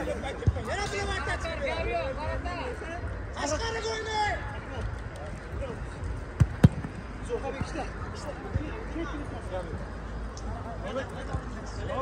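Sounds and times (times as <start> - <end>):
football kicked thuds: 6.4 - 7.8.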